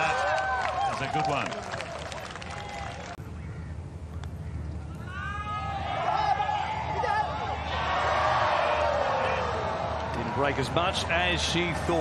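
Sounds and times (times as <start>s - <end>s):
gallery applause: 0.0s - 3.2s.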